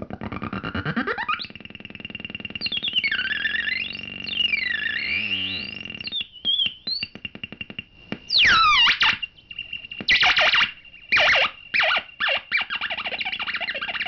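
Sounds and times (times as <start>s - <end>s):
steady high whine: 1.3s - 14.0s
synthesizer bleeps and chirps: 2.3s - 7.1s, 8.3s - 9.3s.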